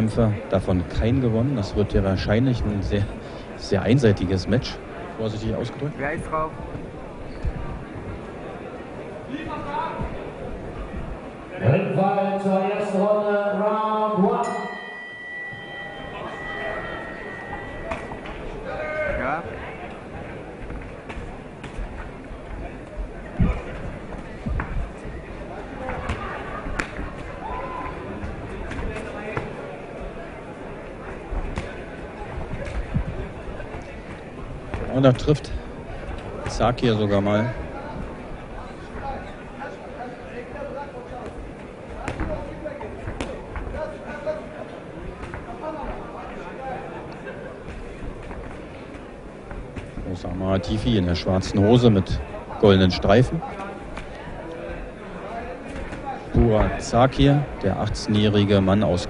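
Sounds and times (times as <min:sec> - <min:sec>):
murmur of crowd: 0:00.0 - 0:59.0
boxing ring bell ringing: 0:14.3 - 0:19.2.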